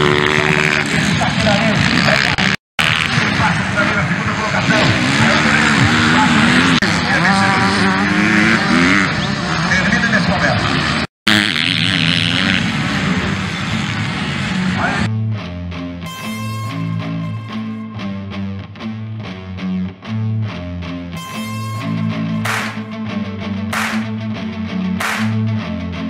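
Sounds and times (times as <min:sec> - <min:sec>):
dirt bike engines revving: 0:00.0 - 0:15.1, 0:21.2 - 0:23.0, 0:23.8 - 0:24.2, 0:25.0 - 0:25.5.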